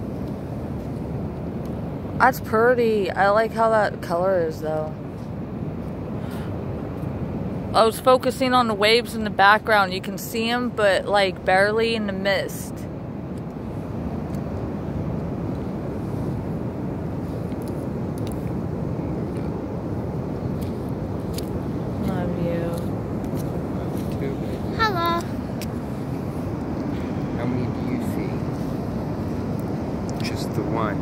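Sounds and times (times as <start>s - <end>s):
short voice sounds: 24.7s - 25.3s.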